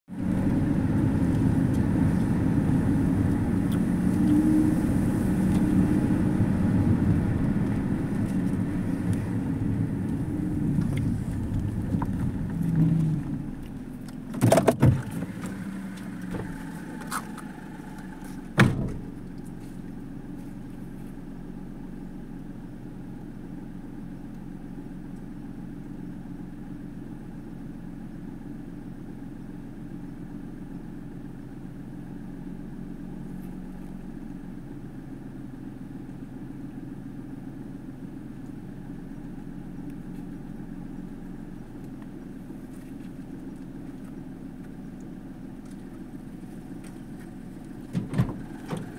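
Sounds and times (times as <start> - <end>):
car idling: 0.1 - 48.9.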